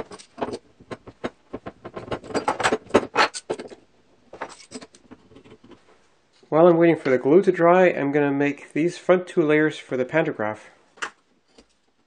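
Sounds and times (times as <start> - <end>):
steel bar clamps clinking and rattling: 4.4 - 5.0.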